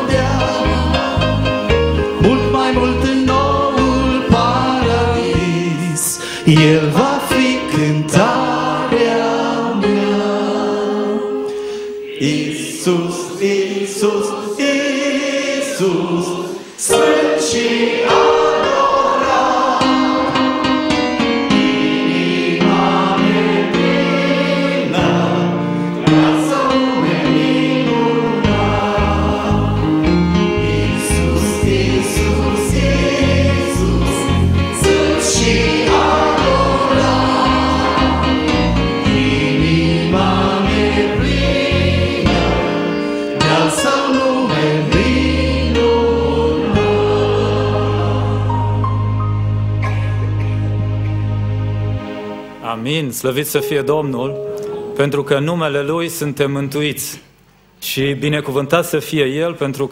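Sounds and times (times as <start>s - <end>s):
lead singers on microphones: 0.0s - 20.6s, 22.2s - 48.6s
congregation singing a hymn: 0.0s - 52.8s
electronic keyboard: 16.8s - 55.9s.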